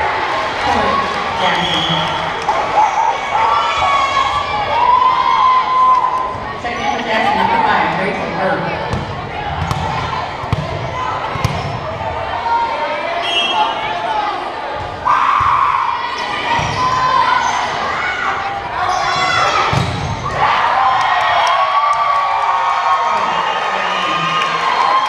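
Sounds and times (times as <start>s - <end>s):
spectators shouting and cheering: 0.0s - 25.0s
volleyball thumps: 8.8s - 11.8s, 19.6s - 20.3s.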